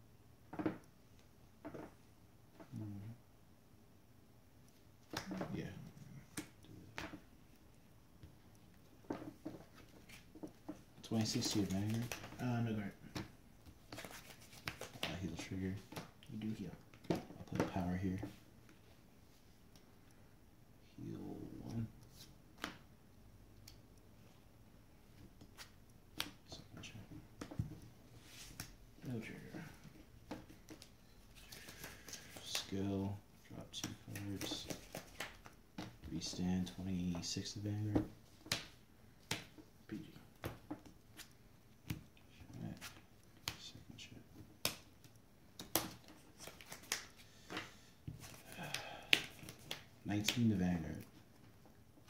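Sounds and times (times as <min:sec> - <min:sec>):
cards rustling: 0:08.8 - 0:18.9, 0:25.0 - 0:51.7
cards snapping and tapping: 0:13.0 - 0:15.2, 0:25.4 - 0:26.6, 0:31.5 - 0:32.7, 0:33.8 - 0:36.1, 0:38.3 - 0:39.6, 0:44.5 - 0:50.5.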